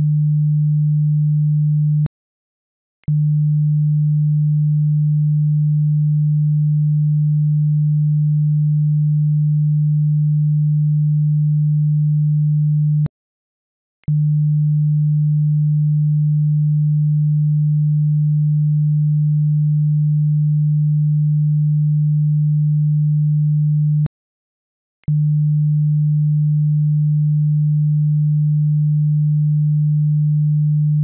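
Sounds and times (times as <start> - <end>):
low sine-wave test tone: 0.0 - 2.1, 3.0 - 13.1, 14.1 - 24.1, 25.1 - 31.0.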